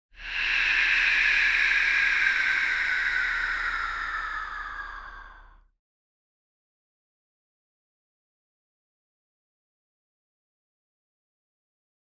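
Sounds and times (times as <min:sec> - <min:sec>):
hissing whoosh falling in pitch: 0:00.2 - 0:05.6.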